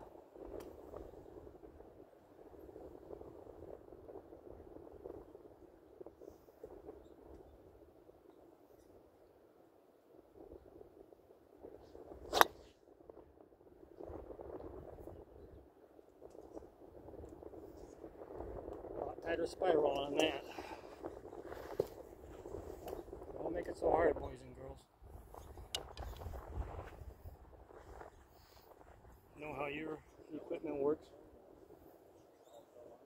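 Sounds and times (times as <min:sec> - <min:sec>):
golf club striking ball: 0:12.3 - 0:12.6.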